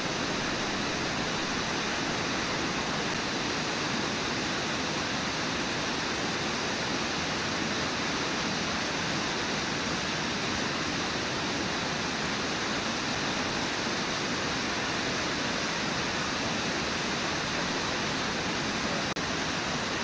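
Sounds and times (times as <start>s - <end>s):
river water rushing over falls: 0.0s - 20.0s.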